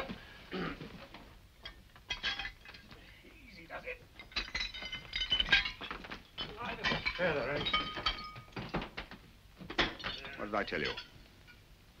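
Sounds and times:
man clearing his throat: 0.5s - 0.9s
broken china clinking on floor: 1.6s - 3.0s, 4.1s - 11.6s.

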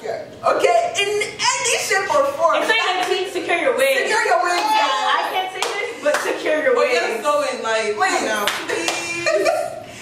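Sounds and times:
women talking: 0.4s - 9.8s
hand clapping: 5.6s - 6.4s, 8.4s - 9.1s.

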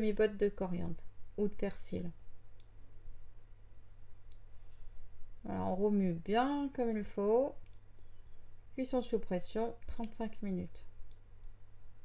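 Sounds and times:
faint click: 4.2s - 4.6s.

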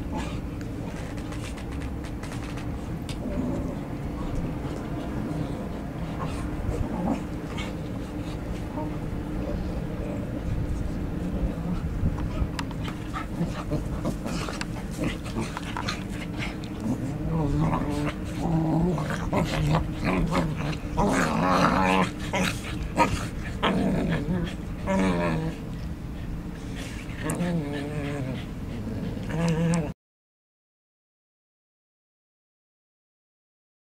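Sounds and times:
dogs play-fighting: 0.0s - 29.9s
low background rumble: 0.0s - 29.9s.

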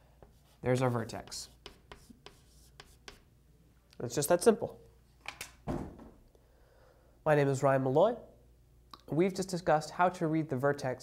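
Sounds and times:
chalk scratching on blackboard: 0.3s - 3.3s.

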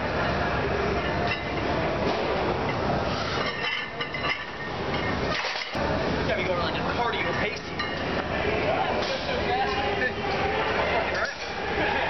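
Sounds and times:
busy weight room din: 0.0s - 12.0s.

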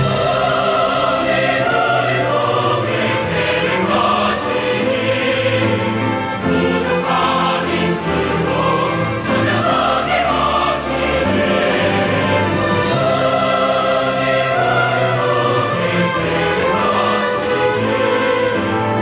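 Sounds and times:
choir singing a hymn: 0.0s - 19.0s.

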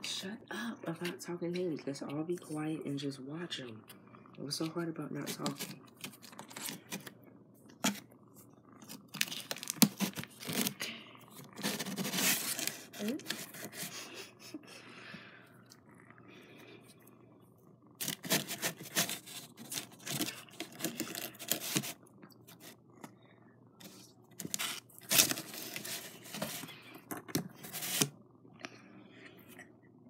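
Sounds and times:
scratchy scraping on cardboard: 11.6s - 13.9s, 18.0s - 22.0s.

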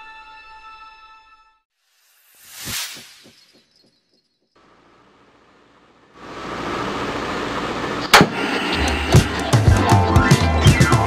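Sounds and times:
hiss of noise: 1.8s - 3.7s, 6.2s - 9.6s
sharp crack: 8.1s - 9.4s
music with a beat: 9.1s - 11.0s.

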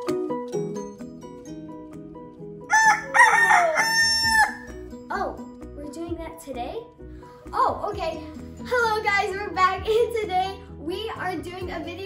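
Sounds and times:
soft music: 0.0s - 12.0s
rooster crowing: 2.7s - 4.8s.

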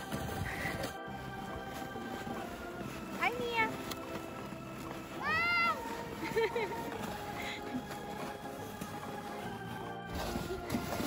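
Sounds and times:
background music: 0.0s - 11.0s
child squealing: 5.2s - 5.8s.

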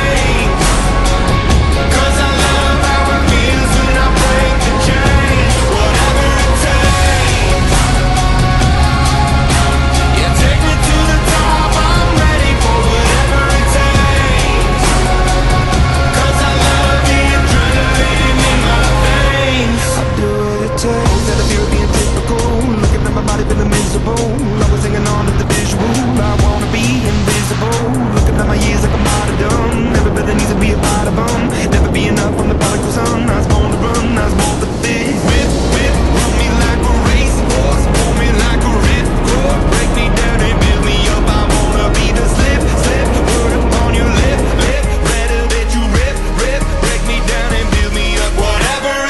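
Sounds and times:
wind buffeting microphone: 0.0s - 48.8s
background music: 0.0s - 49.0s
propeller plane engine roar: 0.0s - 49.0s
rushing wind: 0.0s - 49.0s.

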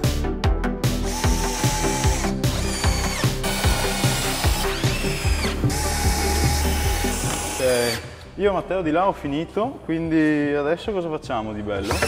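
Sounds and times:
background music with beat: 0.0s - 8.8s
cordless drill into wood: 1.0s - 8.1s.

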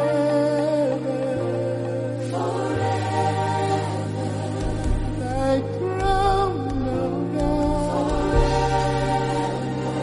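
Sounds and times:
choir singing held chords: 0.0s - 10.0s.

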